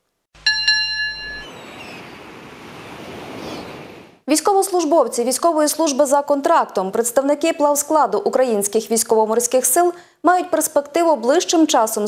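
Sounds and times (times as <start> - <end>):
held ringing tone: 0.4 - 2.0.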